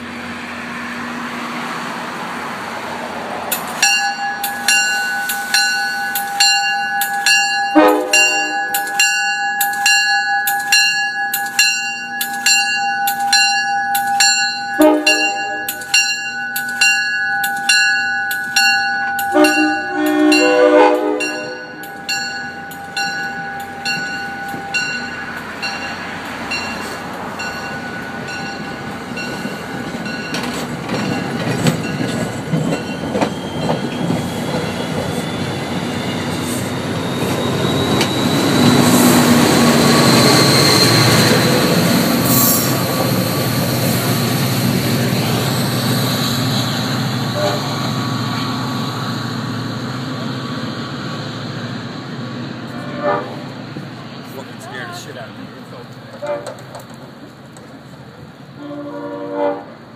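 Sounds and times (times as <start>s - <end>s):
train coaches rushing past: 0.0s - 59.9s
crossing bell dinging: 3.5s - 50.0s
train horn blasts: 7.6s - 9.0s, 13.2s - 15.8s, 19.2s - 21.9s, 47.2s - 47.8s, 52.7s - 53.5s, 56.2s - 56.7s, 58.5s - 59.9s.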